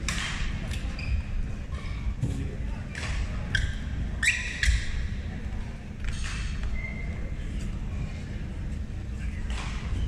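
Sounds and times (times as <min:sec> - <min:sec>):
low rumble of large hall: 0:00.0 - 0:10.0
sports shoes squeaking on floor: 0:00.8 - 0:02.0, 0:03.4 - 0:05.0, 0:06.1 - 0:07.7.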